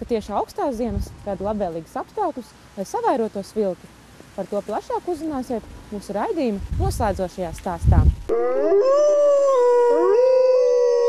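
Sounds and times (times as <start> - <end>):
wolves howling: 8.3 - 11.0.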